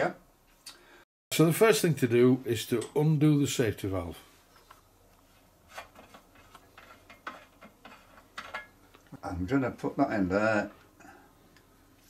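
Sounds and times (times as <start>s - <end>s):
metal rubbing: 5.6s - 8.8s.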